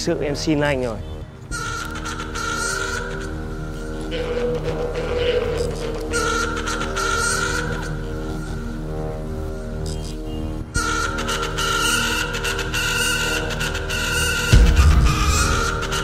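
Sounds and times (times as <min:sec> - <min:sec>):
background music with pulse: 0:00.0 - 0:16.0.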